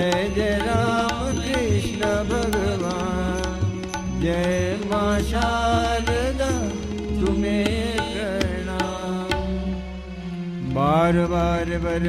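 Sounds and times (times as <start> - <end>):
man singing devotional verse: 0.0 - 9.7, 10.6 - 12.0.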